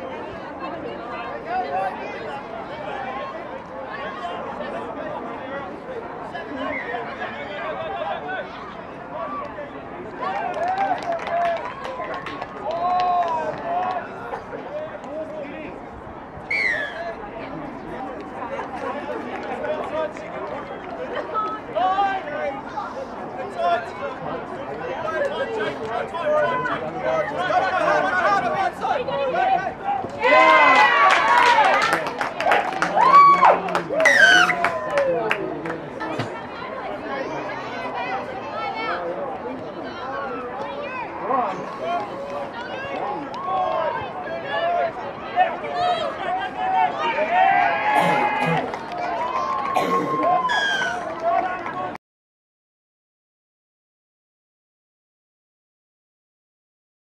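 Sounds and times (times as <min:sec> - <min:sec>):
people calling out and chatting: 0:00.0 - 0:52.0.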